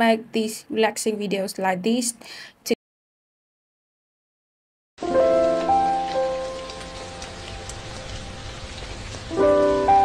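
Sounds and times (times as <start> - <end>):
soft music of long held notes: 5.0 - 10.0
steady rain: 5.0 - 10.0.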